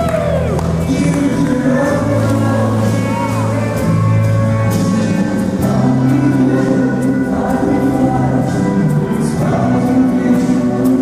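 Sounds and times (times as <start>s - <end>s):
choir singing held chords: 0.9s - 11.0s.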